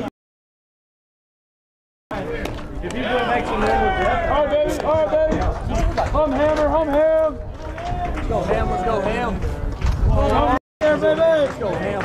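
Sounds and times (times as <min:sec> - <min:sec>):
voices calling out and chattering: 0:02.1 - 0:12.0.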